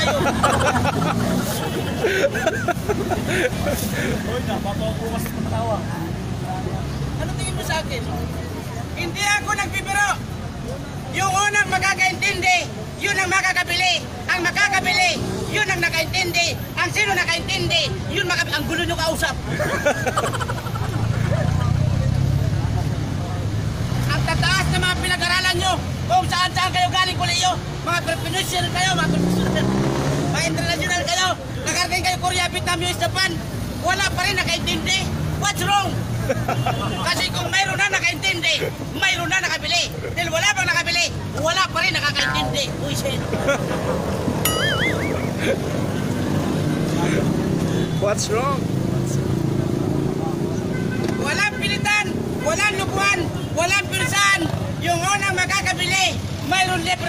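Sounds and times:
vehicle engine rumbling: 0:00.0 - 0:11.3, 0:27.3 - 0:57.0
crowd chatter: 0:00.0 - 0:24.8, 0:35.0 - 0:57.0.

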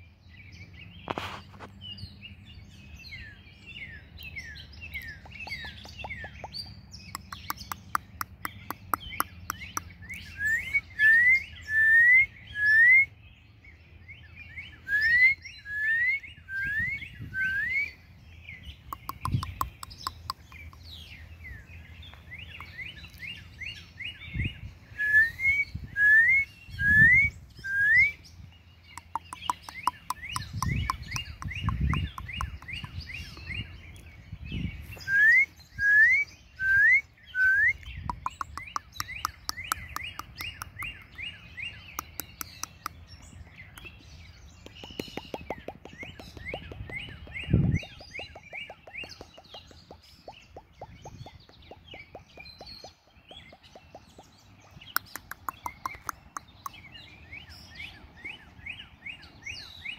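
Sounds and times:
birds chattering and twittering: 0:00.0 - 0:59.9
bird rising whistle: 0:14.9 - 0:18.0.

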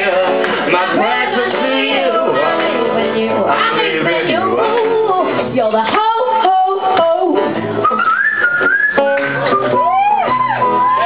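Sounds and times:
live band with guitar: 0:00.0 - 0:11.0
person whistling melody: 0:07.8 - 0:10.2.

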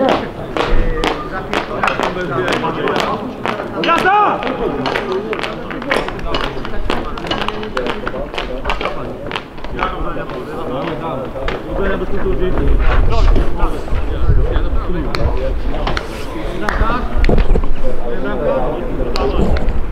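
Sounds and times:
short sharp knocks or claps: 0:00.0 - 0:04.2.

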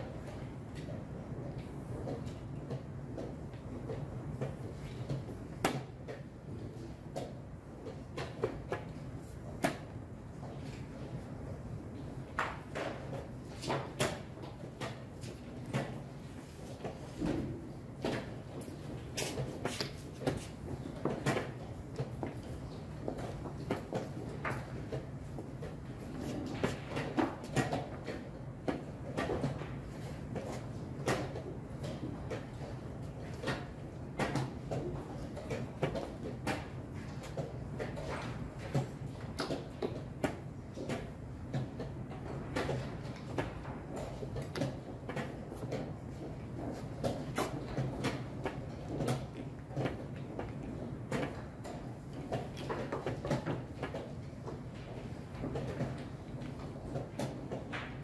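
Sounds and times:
room noise: 0:00.0 - 0:58.0.

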